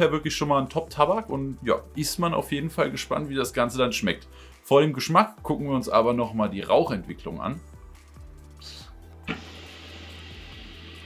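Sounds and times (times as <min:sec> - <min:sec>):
background music with bass: 0:00.0 - 0:11.0
air hissing through a hose: 0:08.6 - 0:11.0.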